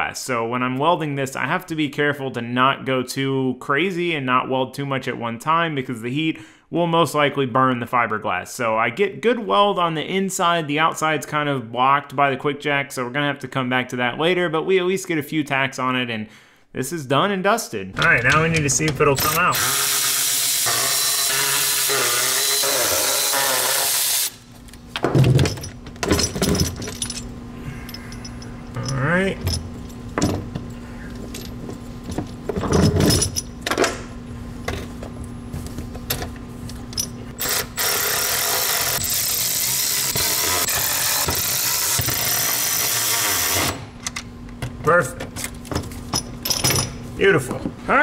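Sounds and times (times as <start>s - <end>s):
electric ratchet running bolts: 18.0s - 24.4s, 37.0s - 44.2s
metallic clanks and rattles: 25.0s - 27.3s.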